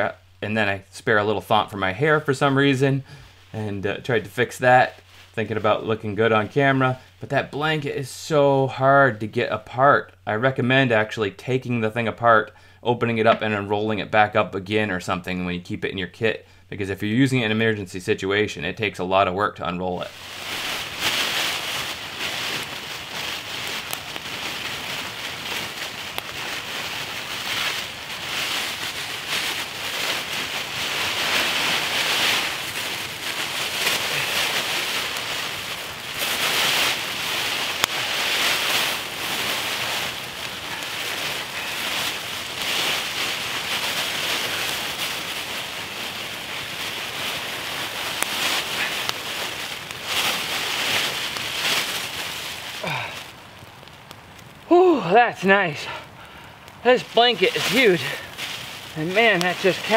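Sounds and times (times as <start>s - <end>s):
foil blanket crinkling: 0.0s - 9.8s, 18.8s - 59.9s.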